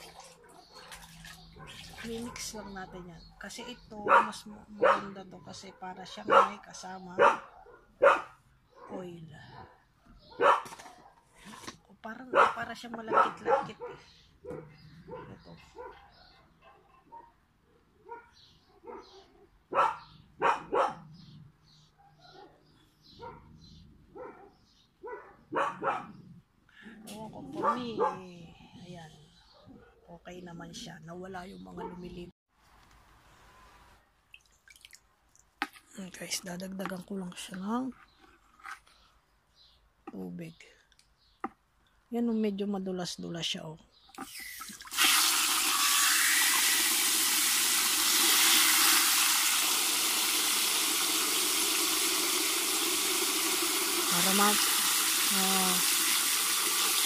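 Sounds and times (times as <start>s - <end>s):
water dripping into bucket: 0.0s - 2.3s, 34.2s - 35.8s
dog barking: 1.6s - 3.0s, 3.6s - 9.0s, 9.6s - 11.2s, 12.3s - 17.4s, 18.0s - 21.1s, 22.0s - 22.6s, 23.2s - 26.2s, 27.6s - 28.3s, 31.8s - 32.2s.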